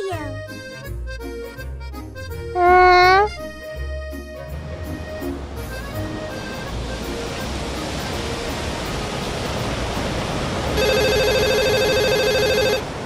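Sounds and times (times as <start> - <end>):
mobile phone ringing: 10.8 - 12.8.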